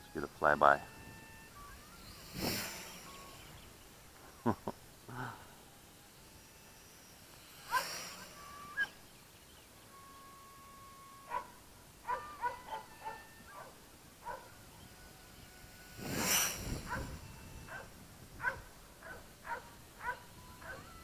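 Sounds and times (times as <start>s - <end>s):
short animal calls: 10.2s - 21.0s.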